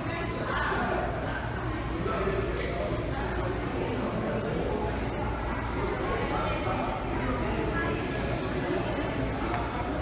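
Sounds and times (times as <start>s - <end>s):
indistinct murmur of voices: 0.0s - 10.0s.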